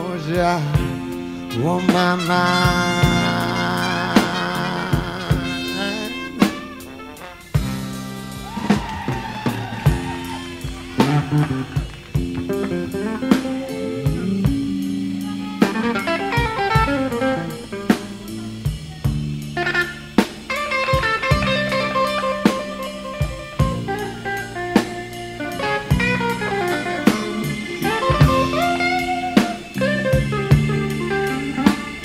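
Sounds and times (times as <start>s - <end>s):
blues band playing: 0.0s - 32.0s
drum kit: 0.0s - 32.0s
lead guitar: 0.0s - 32.0s.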